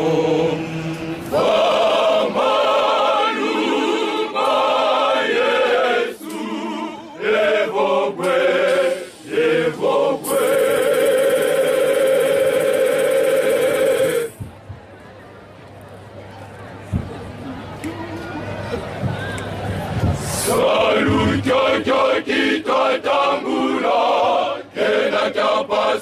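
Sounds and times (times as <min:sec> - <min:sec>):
male choir singing in harmony: 0:00.0 - 0:14.4, 0:20.3 - 0:26.0.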